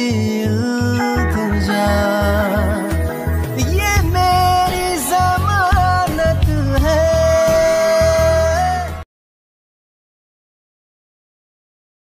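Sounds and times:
steady bass accompaniment: 0.0 - 9.0.

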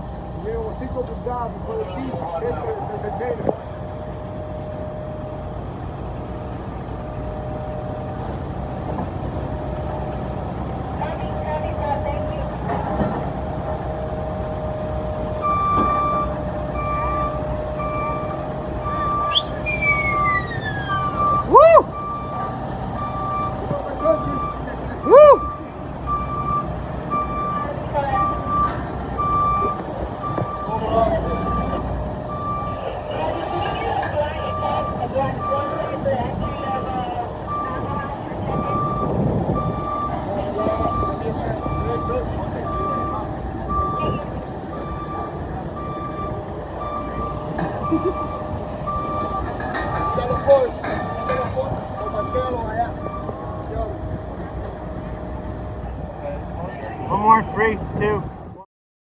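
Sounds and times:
diesel engine running: 0.0 - 58.6
backup alarm beeping: 14.2 - 53.6
loud rising and falling tone: 15.6 - 22.4.

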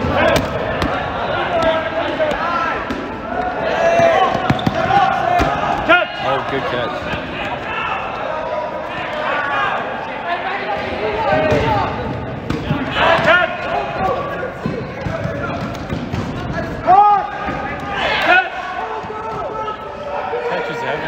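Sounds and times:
balls bouncing on gym floor: 0.0 - 9.4, 11.2 - 19.8
players shouting: 0.0 - 21.0.

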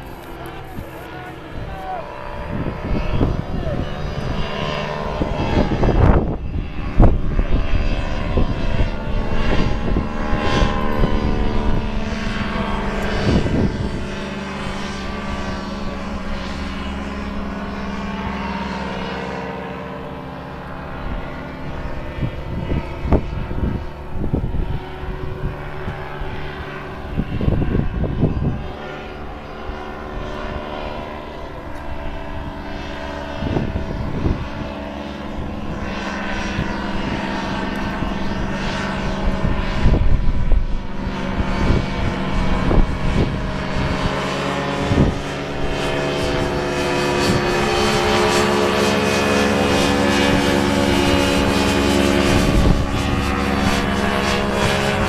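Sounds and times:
ultralight aircraft engine droning: 0.0 - 55.0.

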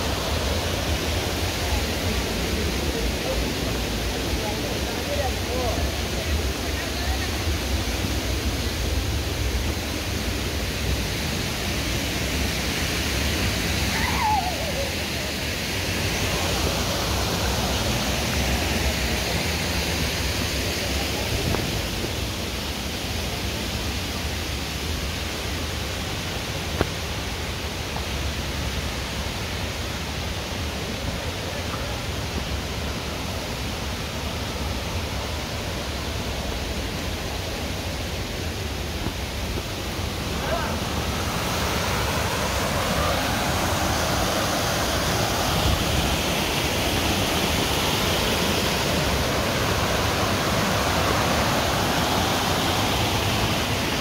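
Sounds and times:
small waterfall rushing: 0.0 - 54.0.

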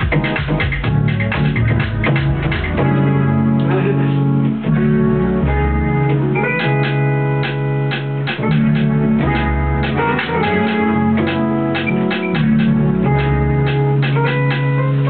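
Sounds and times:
house beat with drum hits: 0.0 - 3.2, 6.4 - 14.8
deep bass line: 0.0 - 15.0
electronic keyboard chords: 0.0 - 15.0.

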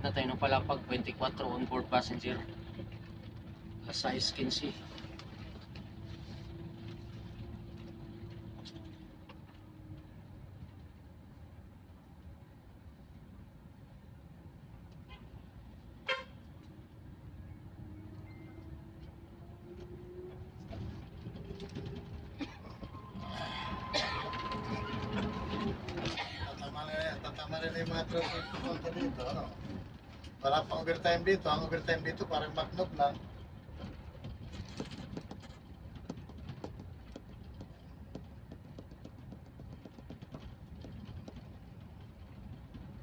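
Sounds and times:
bus engine: 0.0 - 43.0
road noise: 0.0 - 43.0.

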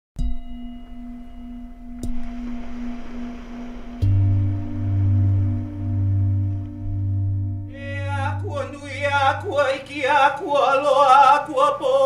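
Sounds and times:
bell-like tone ringing: 0.2 - 9.4.

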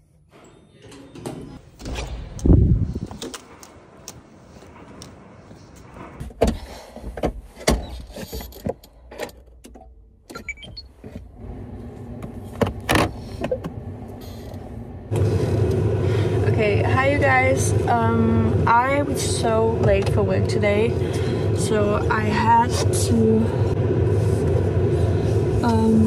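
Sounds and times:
car engine hum: 10.9 - 26.0.

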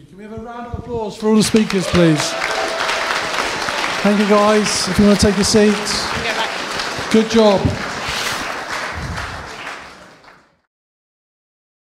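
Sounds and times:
audience applauding: 1.3 - 10.7.

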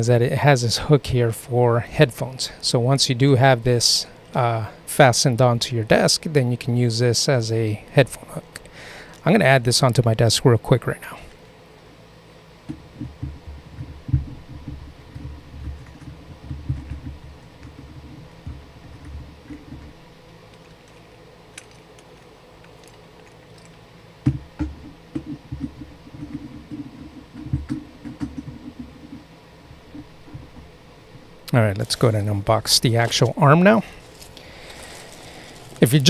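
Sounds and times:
desk clamp knocks and thumps: 24.2 - 26.8.

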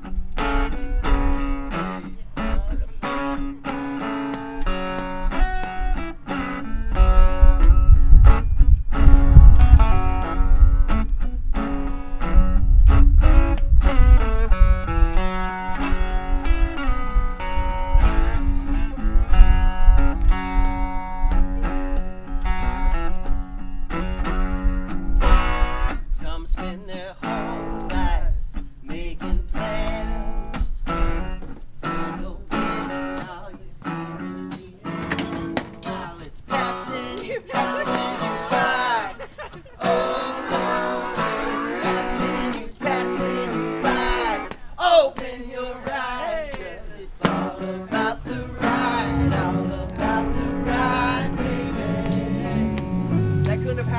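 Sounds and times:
resonator guitar playing: 0.0 - 26.1, 33.8 - 44.5, 47.2 - 53.9.

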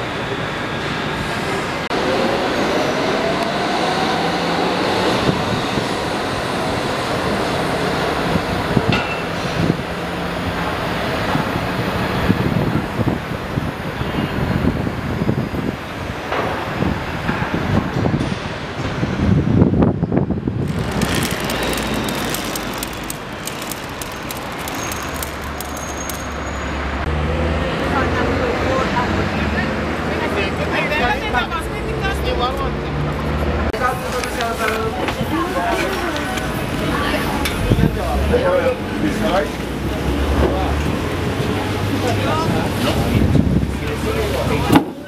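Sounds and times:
road traffic noise: 0.0 - 45.0
street noise with voices: 0.0 - 45.0
metro train motor whine: 20.6 - 26.4.

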